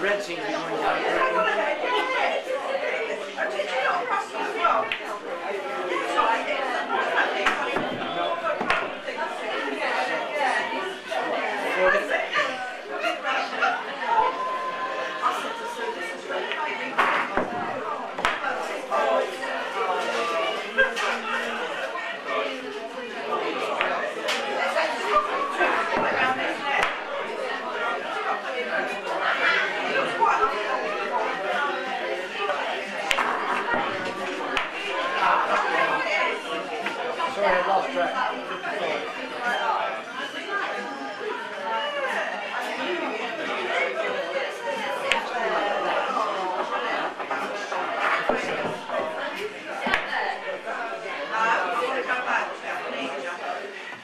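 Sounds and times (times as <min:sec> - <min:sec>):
background chatter of voices: 0:00.0 - 0:54.0.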